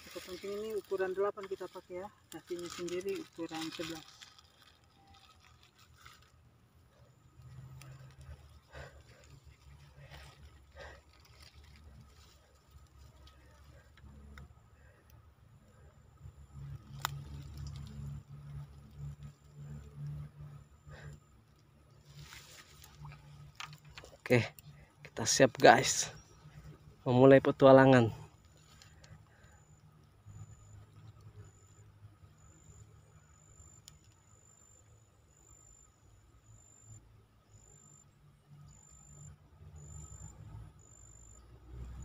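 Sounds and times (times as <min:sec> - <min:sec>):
fishing line and plastic bag rustling: 0:00.0 - 0:14.9, 0:22.0 - 0:29.5.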